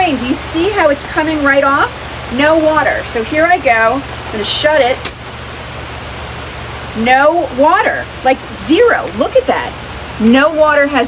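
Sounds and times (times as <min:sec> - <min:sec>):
heavy rain hiss: 0:00.0 - 0:11.0.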